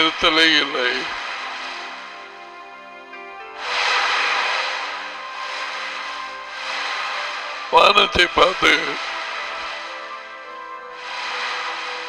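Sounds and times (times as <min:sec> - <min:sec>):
man's voice: 0:00.0 - 0:01.1, 0:07.7 - 0:09.0
ocean surf washing onto beach: 0:00.0 - 0:12.0
soft background music: 0:00.0 - 0:12.0.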